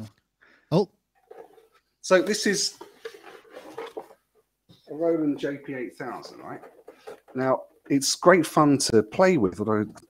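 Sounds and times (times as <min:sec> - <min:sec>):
person talking: 0:02.0 - 0:02.8, 0:04.8 - 0:10.0.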